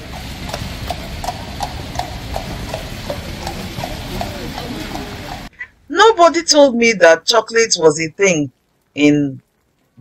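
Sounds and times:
hooves clip-clopping on cobblestones: 0:00.0 - 0:05.5
rain and wind: 0:00.0 - 0:10.0.

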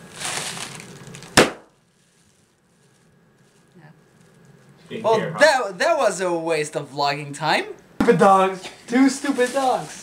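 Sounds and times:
plastic bag bursting pop: 0:00.0 - 0:02.1.

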